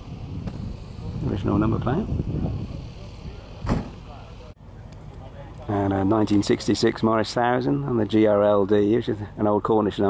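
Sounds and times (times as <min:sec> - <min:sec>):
wind rumbling on microphone: 0:00.0 - 0:04.5
short knock: 0:03.6 - 0:04.0.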